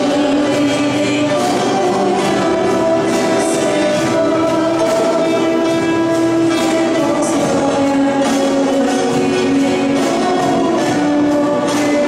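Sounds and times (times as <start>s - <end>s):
choir singing a hymn: 0.0s - 12.0s
instrumental accompaniment: 0.0s - 12.0s.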